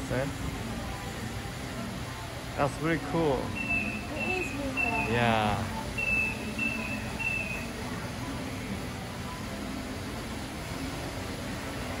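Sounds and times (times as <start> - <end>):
low machine and room noise: 0.0 - 12.0
floor scrubber high beeps: 3.5 - 5.2, 6.0 - 7.7.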